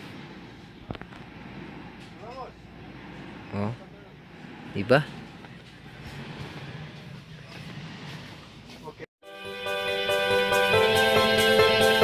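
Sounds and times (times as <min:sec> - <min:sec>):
shop interior hum: 0:00.0 - 0:09.1.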